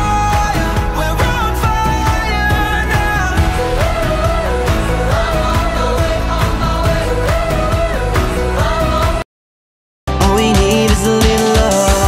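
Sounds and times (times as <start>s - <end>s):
drums keeping a steady beat: 10.1s - 12.0s
person singing a melody: 10.1s - 12.0s.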